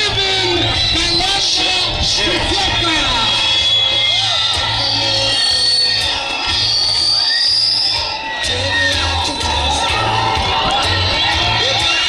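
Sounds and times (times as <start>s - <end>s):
music with low beat: 0.0s - 7.3s, 7.9s - 12.0s
crowd cheering and shouting: 0.0s - 12.0s.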